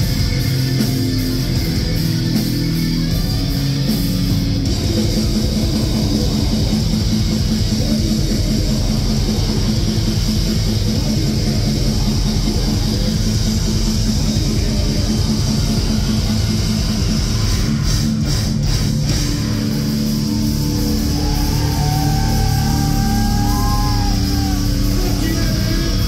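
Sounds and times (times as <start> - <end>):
bass guitar: 0.0 - 26.0
distorted electric guitars: 0.0 - 26.0
drums: 0.0 - 26.0.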